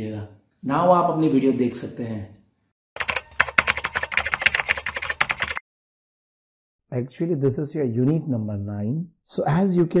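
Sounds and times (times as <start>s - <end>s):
keyboard typing clicks: 3.0s - 5.6s.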